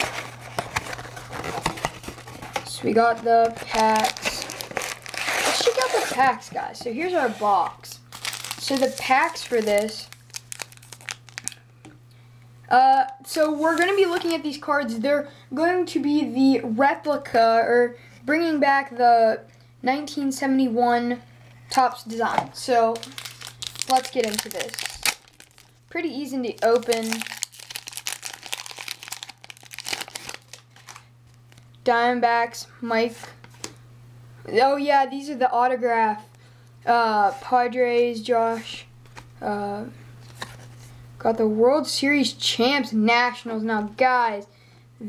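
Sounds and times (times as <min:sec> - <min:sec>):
crinkly wrapper crackling: 0:00.0 - 0:06.3, 0:07.8 - 0:11.6, 0:13.4 - 0:14.4, 0:22.6 - 0:25.8, 0:26.4 - 0:31.8
cards being handled: 0:00.0 - 0:11.6, 0:22.2 - 0:25.7, 0:40.2 - 0:40.8.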